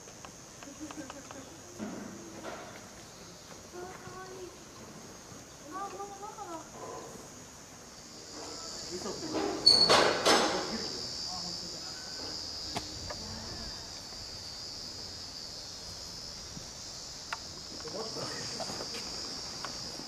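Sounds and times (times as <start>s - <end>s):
insects chirring: 0.0s - 20.0s
faint clicks: 0.2s - 1.5s, 17.2s - 18.0s.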